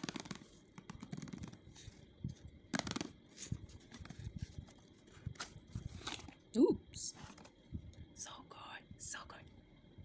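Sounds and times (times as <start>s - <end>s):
faint whispering: 8.2s - 9.5s.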